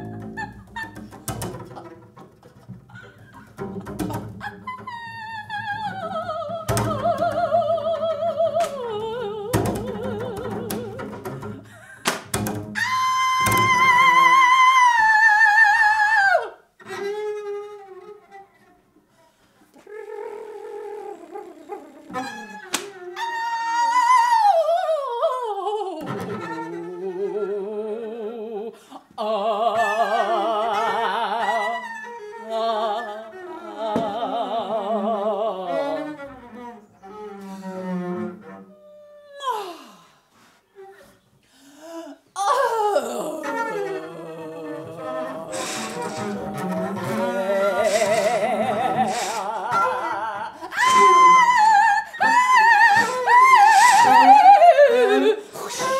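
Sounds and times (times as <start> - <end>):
bowed double bass: 0.0 - 8.3, 43.4 - 51.8
woman singing wordlessly: 4.6 - 11.6, 12.8 - 16.7, 23.4 - 36.3, 42.4 - 55.9
woman singing wordless held note: 42.5 - 50.3.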